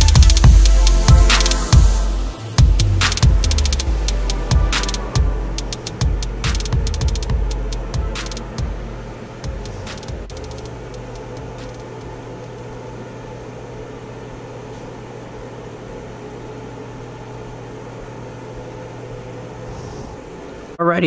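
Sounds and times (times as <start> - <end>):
background music: 0.0 - 12.2
machine hum: 0.0 - 21.0.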